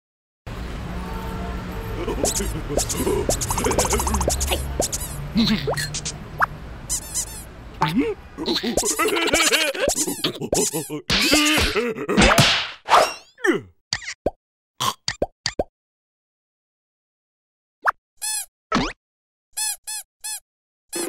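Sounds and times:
sliding cartoon sound effects: 2.0s - 13.2s
cartoon characters squealing: 2.2s - 6.1s.

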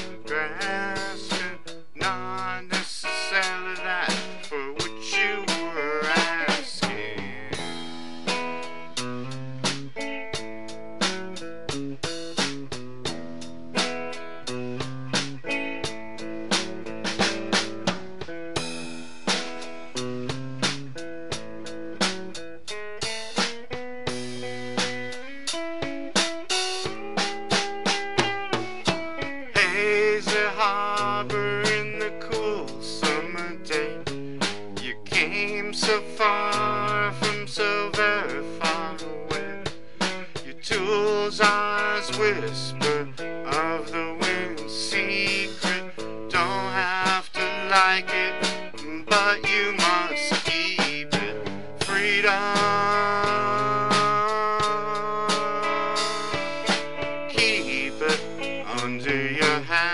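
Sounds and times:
drum kit steady beat: 0.0s - 59.9s
guitar: 0.0s - 59.9s.

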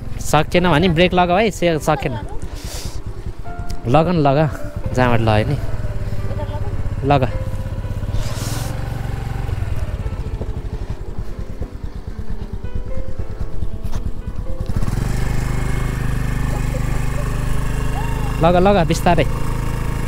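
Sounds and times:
small motorbike engine running: 0.0s - 20.0s.

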